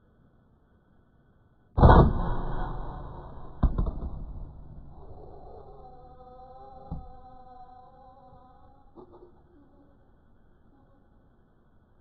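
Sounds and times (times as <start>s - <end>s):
air rifle shot: 1.8s - 4.9s
faint steady tones: 2.5s - 12.0s.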